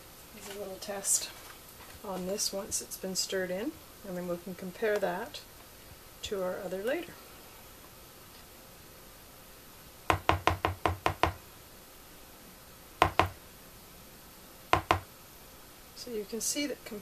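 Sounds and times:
utensil knocking against bowl: 13.0 - 13.4, 14.8 - 15.1.

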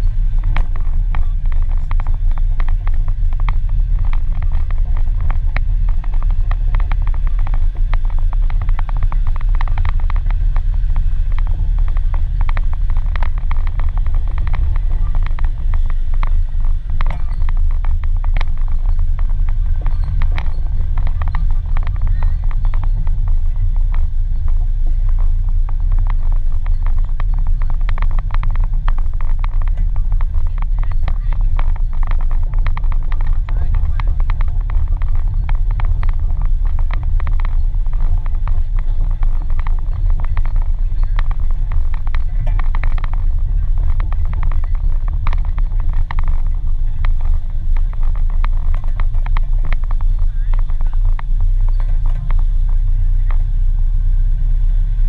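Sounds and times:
rattling and clicking: 0.0 - 55.0.

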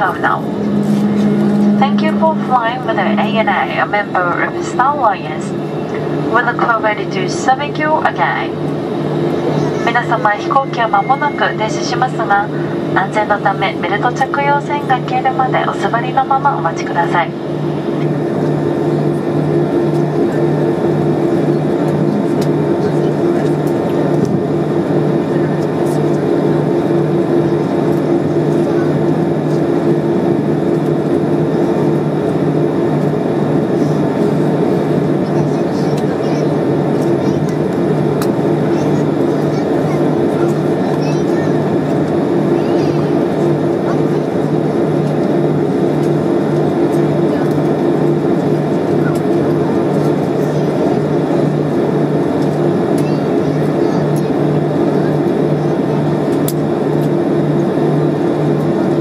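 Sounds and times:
airliner cabin drone: 0.0 - 59.0.

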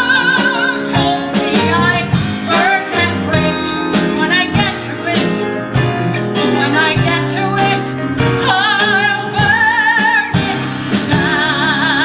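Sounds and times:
woman singing with vibrato: 0.0 - 5.6, 6.4 - 12.0
live band playing a ballad: 0.0 - 12.0.

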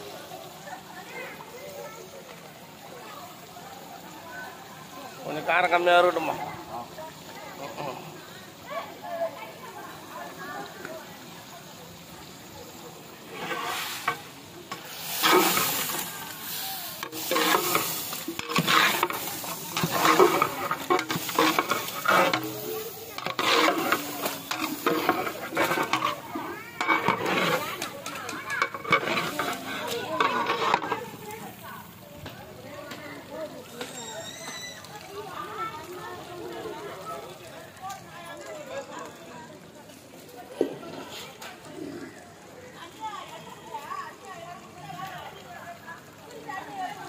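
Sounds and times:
meat sizzling: 0.0 - 36.8
ladle scraping metal pot: 13.2 - 31.6.

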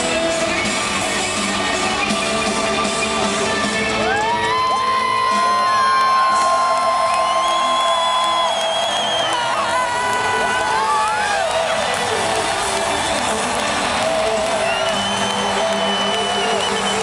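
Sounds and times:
live rock band: 0.0 - 17.0
crowd cheering and whooping: 3.9 - 17.0.

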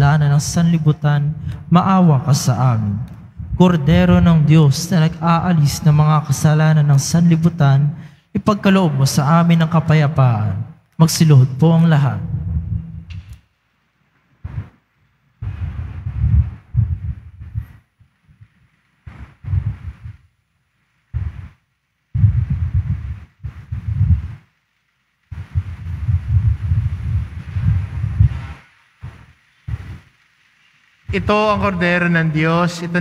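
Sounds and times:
low rumbling noise: 0.0 - 33.0.

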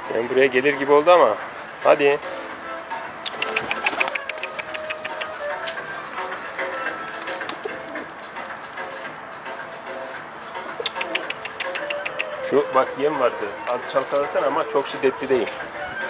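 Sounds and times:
pigeons cooing: 0.0 - 16.0
sharp taps: 3.2 - 8.6, 10.5 - 12.5.

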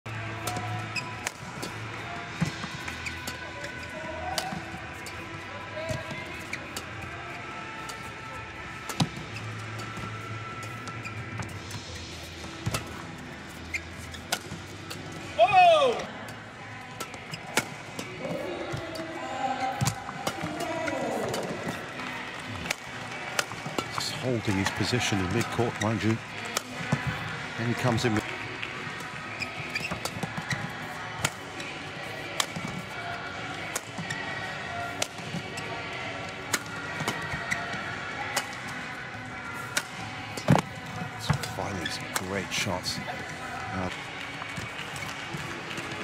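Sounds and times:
crowd voices: 0.0 - 46.0
racket striking shuttlecock: 0.4 - 1.8, 22.6 - 23.9, 39.7 - 40.7
shoe squeak on court: 2.5 - 5.2, 8.9 - 14.7, 29.4 - 31.4.

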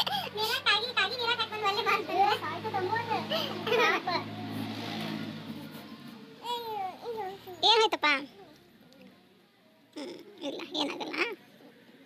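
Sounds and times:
child speaking: 0.2 - 4.3, 6.4 - 8.4.

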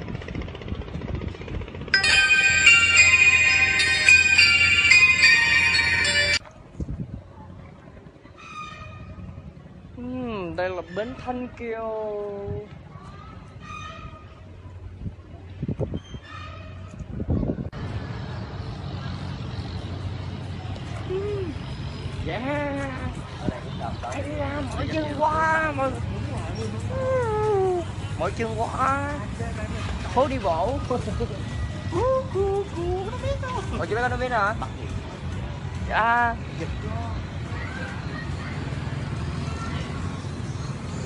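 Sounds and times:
city traffic rumble: 0.0 - 41.0.

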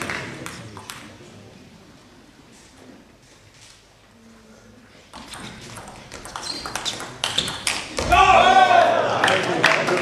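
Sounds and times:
loud shout: 8.0 - 9.4.

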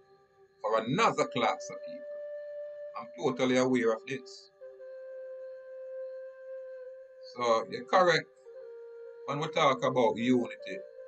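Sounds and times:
ambient music with held tones: 0.0 - 11.0.

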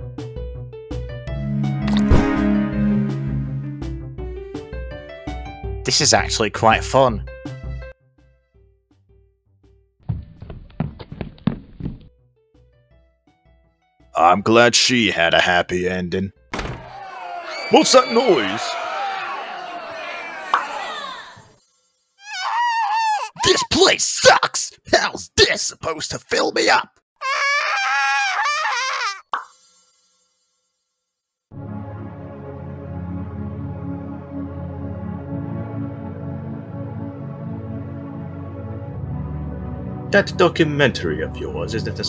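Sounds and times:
soft background music: 0.8 - 7.9, 35.3 - 42.0
rapid thuds and knocks: 10.0 - 12.2
cartoon character wailing cry: 22.2 - 23.8, 27.2 - 29.3.

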